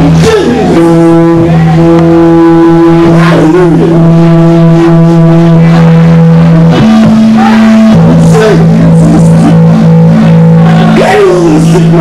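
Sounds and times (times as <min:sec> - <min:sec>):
electric guitar droning note: 0:00.0 - 0:12.0.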